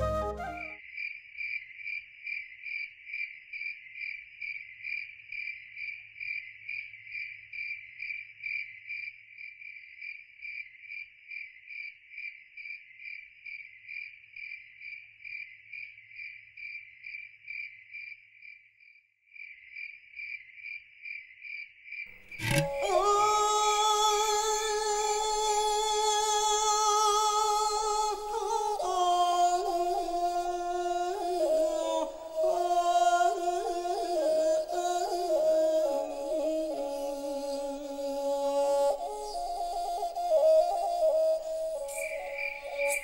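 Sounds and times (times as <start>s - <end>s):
cricket chirping: 0.8s - 43.0s.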